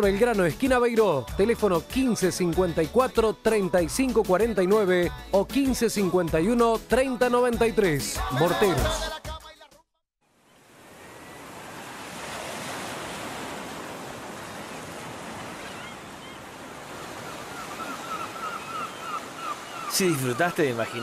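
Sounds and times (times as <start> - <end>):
ocean waves washing on shore: 10.4 - 21.0.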